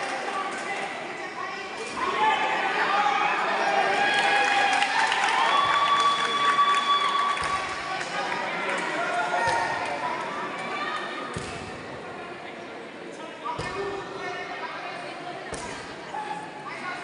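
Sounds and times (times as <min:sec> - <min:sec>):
people shouting in echoing hall: 0:00.0 - 0:11.7.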